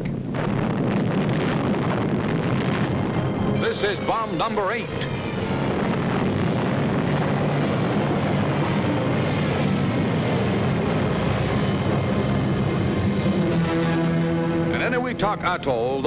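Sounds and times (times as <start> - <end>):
loud steady explosion rumble: 0.0 - 16.0
low orchestral music: 2.8 - 16.0.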